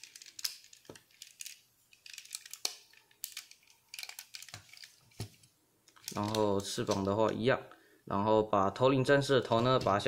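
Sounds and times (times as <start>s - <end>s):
plastic toy parts clicking: 0.0s - 5.0s, 5.9s - 7.1s.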